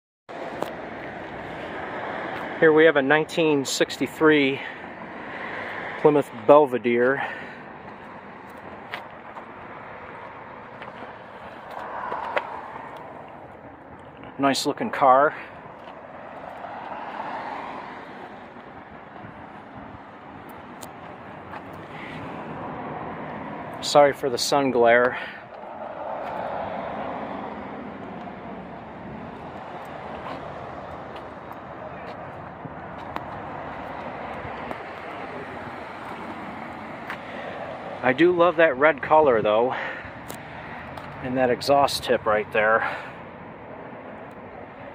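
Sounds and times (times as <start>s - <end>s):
road traffic noise: 0.3s - 44.9s
vehicle passing: 4.1s - 14.4s, 15.0s - 44.9s.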